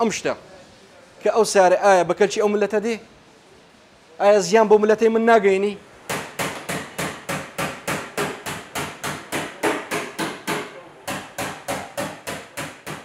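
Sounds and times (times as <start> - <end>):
hammer tapping sheet metal: 6.1 - 13.0.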